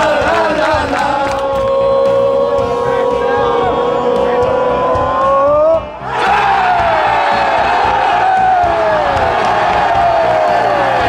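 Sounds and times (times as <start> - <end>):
crowd singing a chant: 0.0 - 8.2
crowd cheering and yelling: 0.0 - 11.0.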